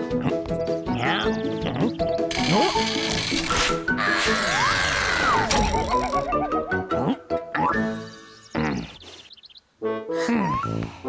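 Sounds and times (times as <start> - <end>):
cartoon music: 0.0 - 9.0.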